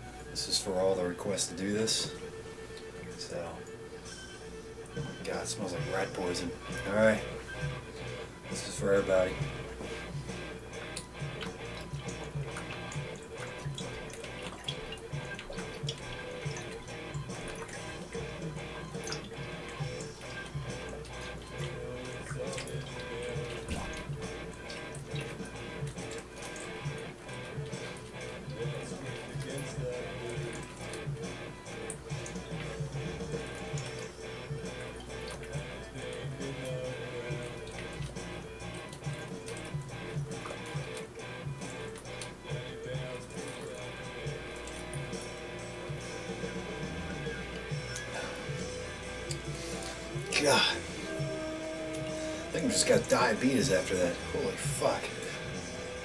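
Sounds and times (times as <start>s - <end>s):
background music: 0.0s - 56.0s.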